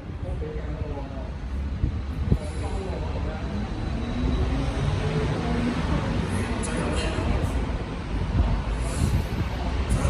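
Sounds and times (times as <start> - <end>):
faint voices: 0.0 - 10.0
low city rumble: 0.0 - 10.0.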